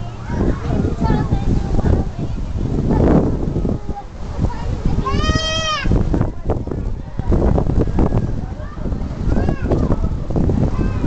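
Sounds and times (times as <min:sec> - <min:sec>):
low rumbling: 0:00.0 - 0:11.0.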